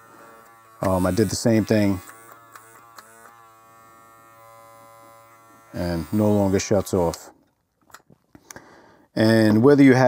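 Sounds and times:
hair clipper motor buzzing: 0.0s - 7.2s.

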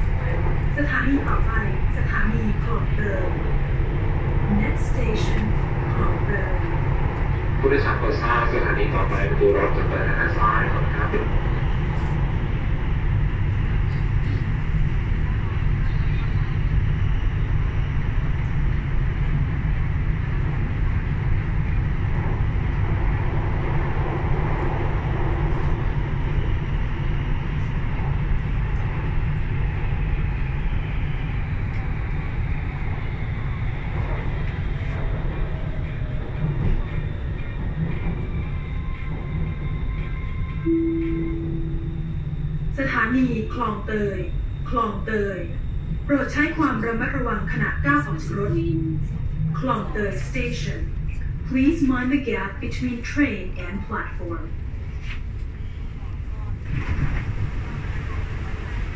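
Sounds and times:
train wheels rumbling: 0.0s - 58.9s
short steady tone: 40.6s - 42.6s
faint whine falling in pitch: 40.7s - 46.1s.

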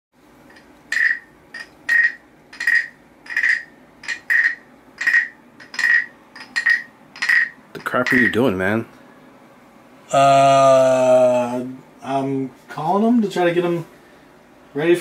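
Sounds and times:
wooden guiro rasping croaks: 1.0s - 8.3s.

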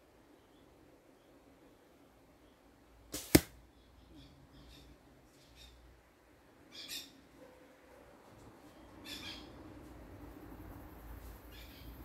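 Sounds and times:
arrow striking hard: 3.1s - 3.6s
arrow swishing: 3.1s - 3.6s.

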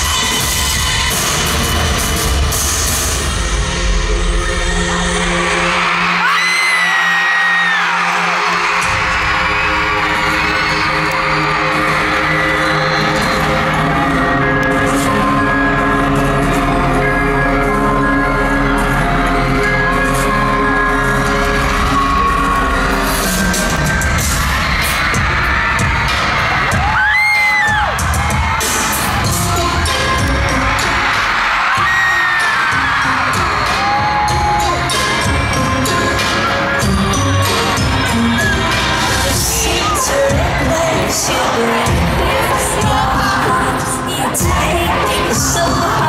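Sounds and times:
audience screaming and cheering: 0.0s - 46.0s
live pop music over loudspeakers: 0.0s - 46.0s.

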